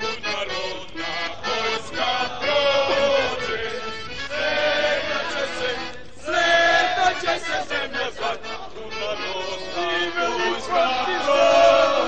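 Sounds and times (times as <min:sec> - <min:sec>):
group singing in chorus: 0:00.0 - 0:12.0.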